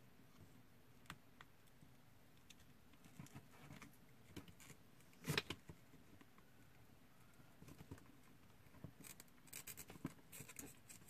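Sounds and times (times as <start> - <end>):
clicks and rustles of wires: 1.0 - 6.5.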